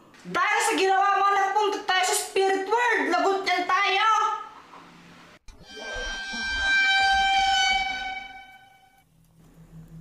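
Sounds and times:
loud sustained horn tone: 0:05.5 - 0:09.0.

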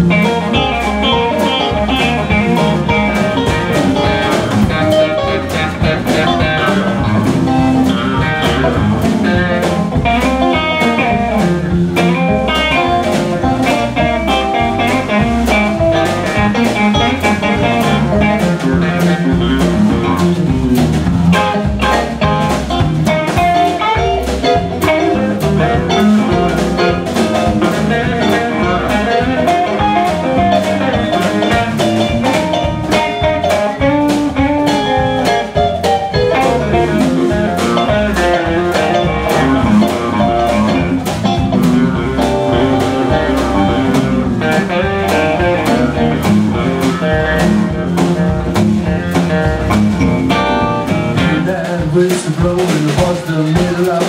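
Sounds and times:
blues band playing live: 0:00.0 - 0:54.0.

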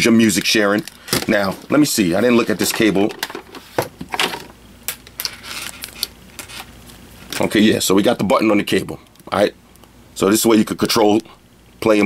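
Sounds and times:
cable handling clicks and rustles: 0:00.0 - 0:07.6.

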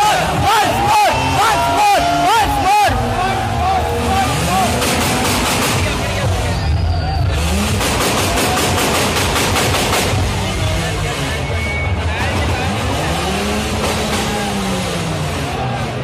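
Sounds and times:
car engine revving: 0:00.0 - 0:16.0
crowd shouting: 0:00.0 - 0:16.0.

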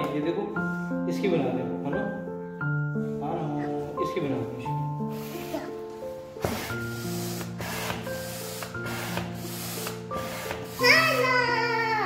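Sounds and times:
hand air pump strokes: 0:06.4 - 0:11.7.

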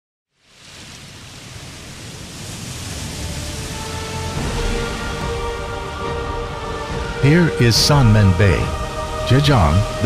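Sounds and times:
ocean surf on beach: 0:00.3 - 0:07.3
music: 0:03.0 - 0:10.0.

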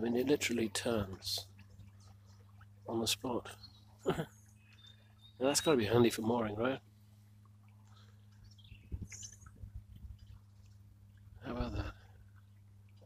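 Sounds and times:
electric boat motor humming: 0:00.0 - 0:13.0.

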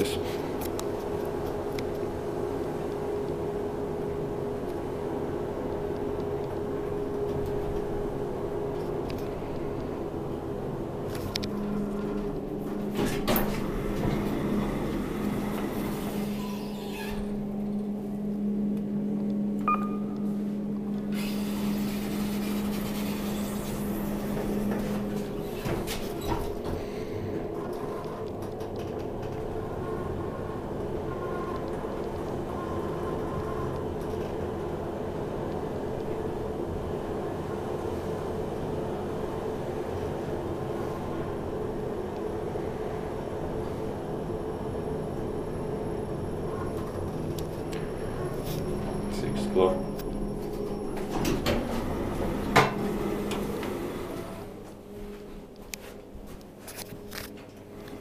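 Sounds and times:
sliding elevator doors: 0:00.0 - 0:19.6, 0:20.2 - 0:56.2
elevator running hum: 0:00.0 - 0:58.0
steady low tone: 0:00.4 - 0:22.4.

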